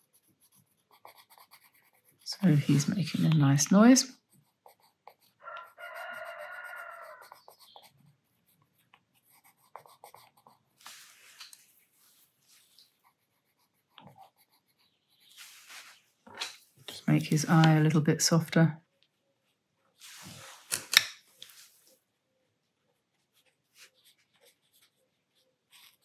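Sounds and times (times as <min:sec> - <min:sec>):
pencil scratching on paper: 0:00.0 - 0:11.2, 0:11.9 - 0:15.9, 0:23.3 - 0:26.0
rooster crowing: 0:05.4 - 0:07.4.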